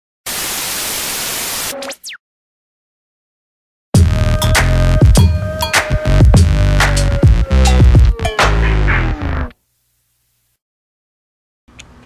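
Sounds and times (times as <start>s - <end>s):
television static hiss: 0.3s - 1.7s.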